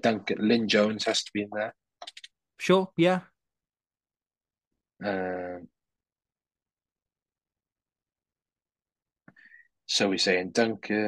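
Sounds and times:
man speaking: 0.0s - 1.8s
short breath: 9.3s - 9.7s.

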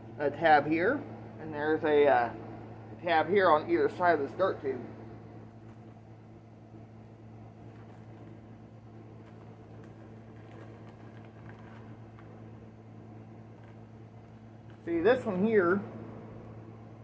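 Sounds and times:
steady low hum: 0.0s - 17.0s
paper bag crinkling and rustling: 9.2s - 12.4s.

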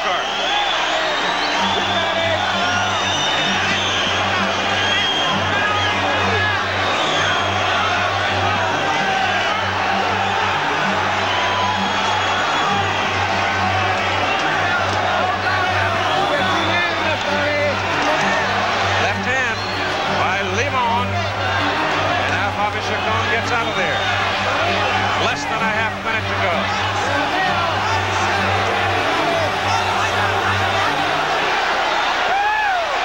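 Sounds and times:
background music: 0.0s - 33.0s
crowd cheering and chanting: 0.0s - 33.0s.

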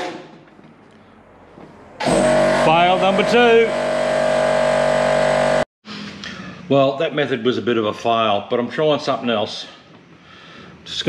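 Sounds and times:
air compressor motor hum: 2.0s - 5.6s.

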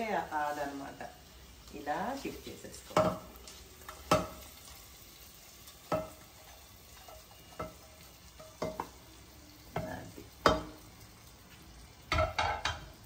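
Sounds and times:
spatula knocking on frying pan: 2.9s - 3.3s, 4.0s - 4.5s, 5.9s - 6.3s, 8.4s - 9.0s, 9.7s - 10.8s, 12.1s - 13.0s.

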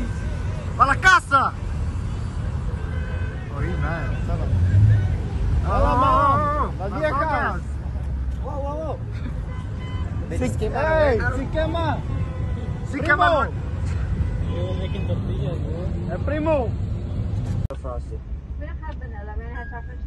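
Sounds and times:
car engines rumbling past: 0.0s - 12.0s
voices shouting: 3.4s - 7.7s.

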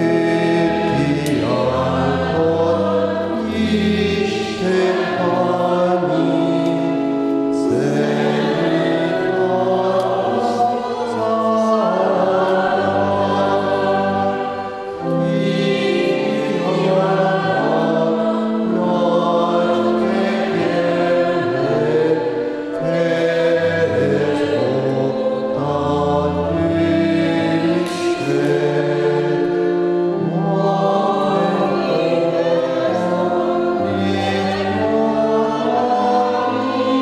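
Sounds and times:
choir singing a hymn: 0.0s - 37.0s.

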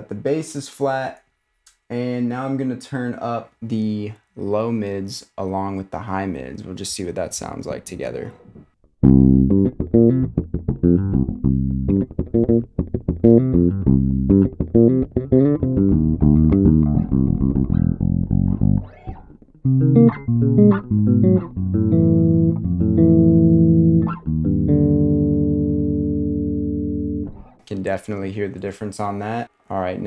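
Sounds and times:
electric bass guitar notes: 8.5s - 27.7s.

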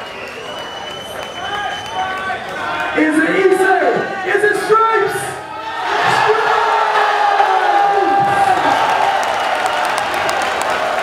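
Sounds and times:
people clapping: 0.0s - 3.6s, 7.7s - 11.0s
crowd cheering and yelling: 0.0s - 11.0s.

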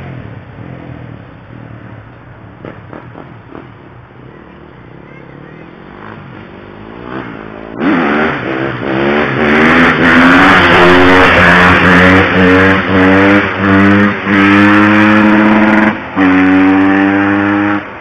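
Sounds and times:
motorcycle engine accelerating hard: 4.4s - 18.0s.

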